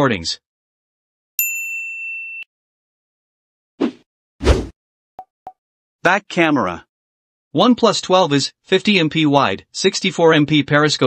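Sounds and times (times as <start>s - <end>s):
clear ding: 1.4s - 2.5s.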